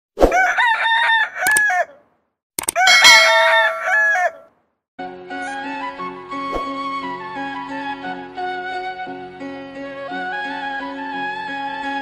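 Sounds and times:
rooster crowing: 0.3 - 2.0, 2.8 - 4.5.

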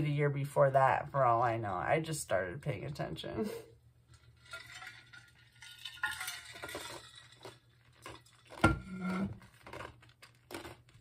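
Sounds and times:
small objects clinking and rustling: 4.2 - 11.0.

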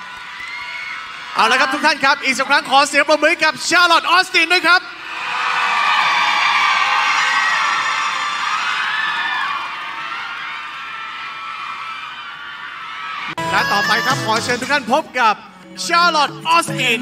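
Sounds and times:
crowd cheering and applauding: 0.0 - 3.3, 5.0 - 14.8
high-pitched screams: 11.1 - 14.4.

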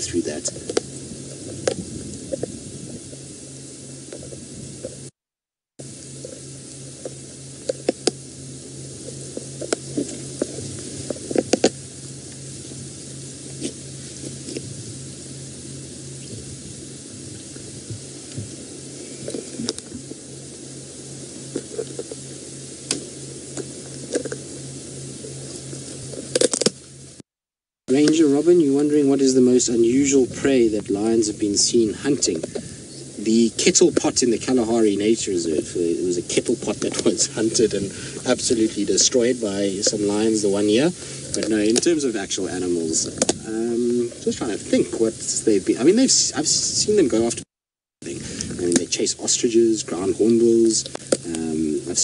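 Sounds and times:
low hum: 0.0 - 5.2, 5.8 - 27.2, 27.9 - 52.0.

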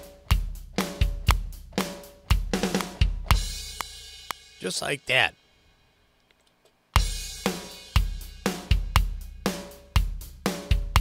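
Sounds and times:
snare and hi-hat: 0.0 - 4.9, 7.0 - 11.0.

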